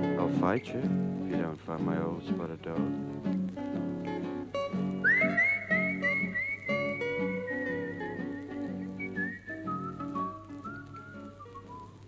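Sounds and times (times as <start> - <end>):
acoustic guitar: 0.0 - 12.0
person whistling: 5.0 - 11.9.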